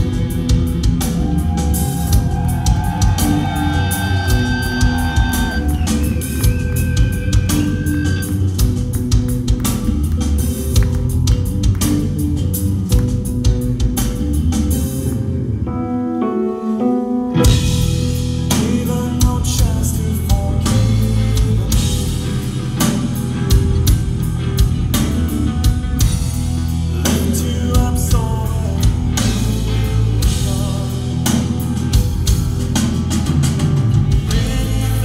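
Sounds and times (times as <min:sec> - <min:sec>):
metal band playing loud: 0:00.0 - 0:15.7, 0:17.3 - 0:35.0.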